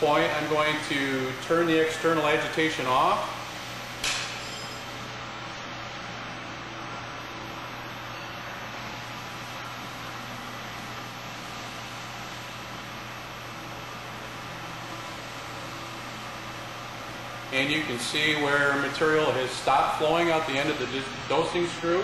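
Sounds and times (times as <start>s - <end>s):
machine hum and whir: 0.0s - 22.0s.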